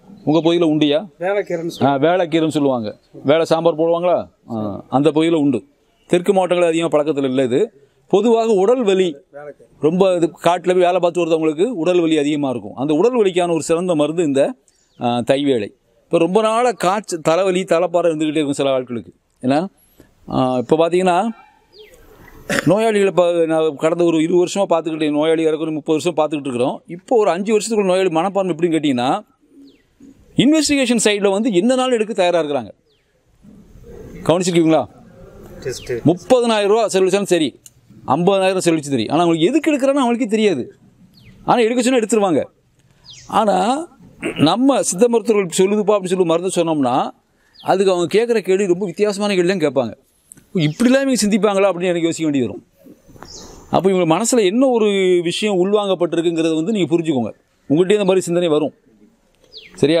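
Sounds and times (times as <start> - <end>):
man's voice through a microphone: 0.0 - 21.5, 22.5 - 29.4, 30.3 - 32.8, 43.3 - 52.8, 53.7 - 58.8, 59.8 - 60.0.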